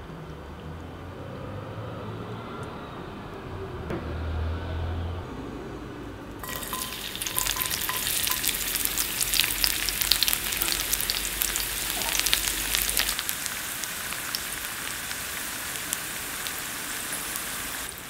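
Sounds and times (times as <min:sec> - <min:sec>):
garlic sizzling in oil: 0:06.4 - 0:18.0.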